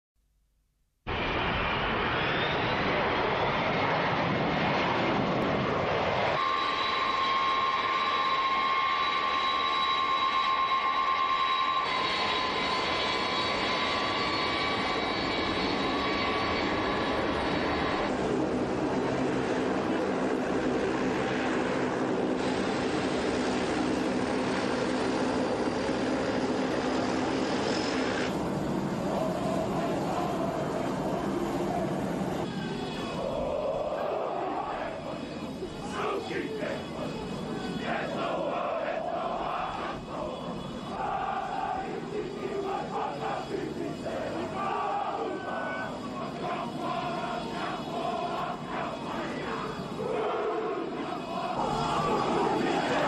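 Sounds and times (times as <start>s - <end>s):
jet engines roaring with whine: 1.1s - 53.0s.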